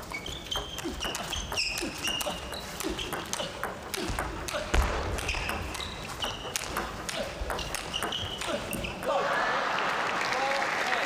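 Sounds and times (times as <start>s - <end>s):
shoes squeaking on floor: 0.0s - 3.8s, 5.2s - 9.1s.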